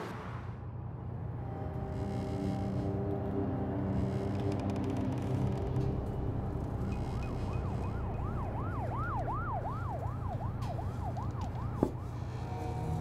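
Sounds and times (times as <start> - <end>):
siren sweeping up and down: 7.0 - 11.8.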